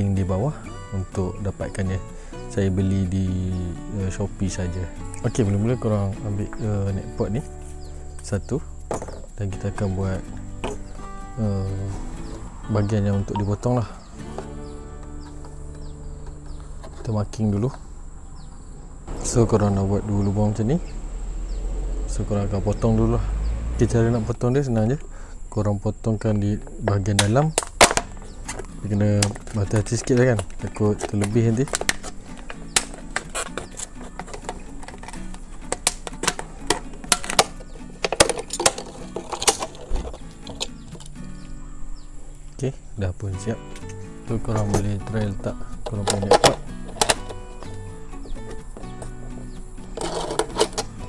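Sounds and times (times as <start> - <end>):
background music: 0.0 - 25.3, 26.4 - 51.0
high bird chirps: 11.9 - 17.0
steady low hum: 14.2 - 26.4
plastic bottle crackling under blade: 27.5 - 41.1, 49.9 - 51.0.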